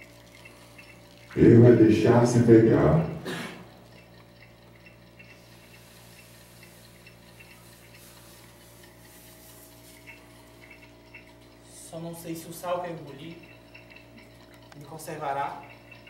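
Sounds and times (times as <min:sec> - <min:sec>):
low electrical hum: 0:00.0 - 0:16.0
person's voice: 0:01.4 - 0:03.2
faint ticks: 0:03.0 - 0:11.7.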